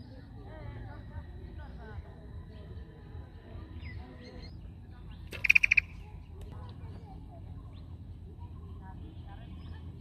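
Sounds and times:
low background murmur: 0:00.0 - 0:10.0.

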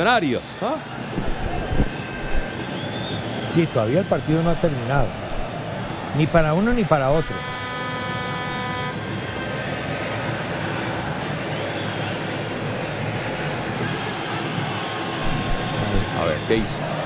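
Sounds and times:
stadium crowd noise: 0:00.0 - 0:17.0
loud horn: 0:07.2 - 0:09.2.

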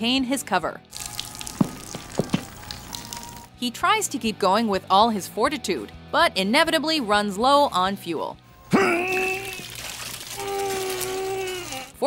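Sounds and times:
urine stream splashing into water: 0:00.9 - 0:03.4, 0:08.7 - 0:11.9.

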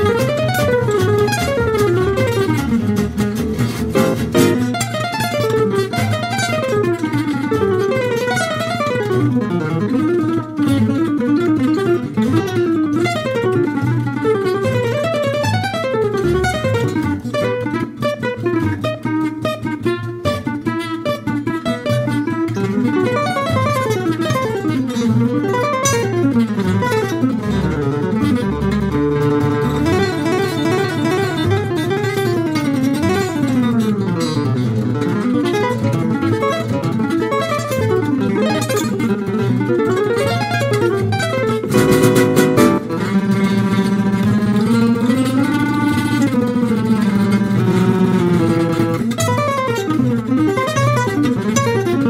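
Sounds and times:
acoustic guitar solo runs: 0:00.0 - 0:52.0
plucked double bass: 0:00.0 - 0:52.0
strummed rhythm guitar: 0:00.0 - 0:52.0.

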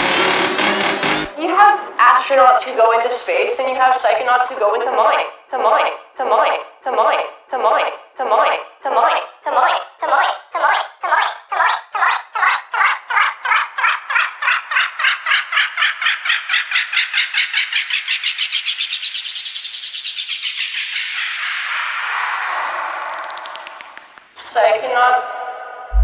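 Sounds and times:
repeated synth hit: 0:00.0 - 0:01.4.

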